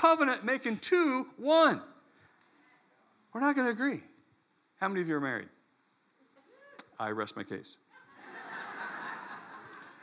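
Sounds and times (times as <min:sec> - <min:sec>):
congregation laughing: 0:07.9 - 0:10.0.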